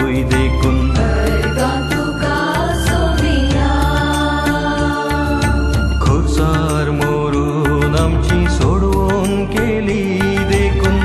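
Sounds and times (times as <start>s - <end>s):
bass line: 0.0s - 11.0s
devotional song: 0.0s - 11.0s
percussion beats: 0.0s - 11.0s.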